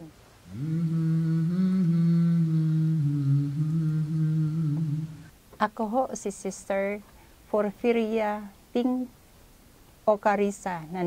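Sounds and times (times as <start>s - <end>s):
low voice humming a melody: 0.0s - 5.3s.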